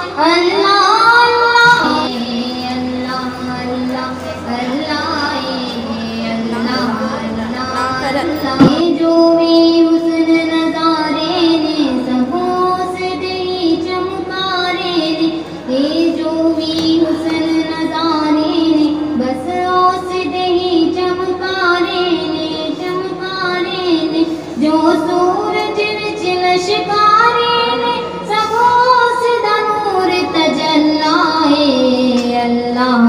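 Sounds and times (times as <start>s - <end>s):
woman singing devotional song: 0.0s - 33.0s.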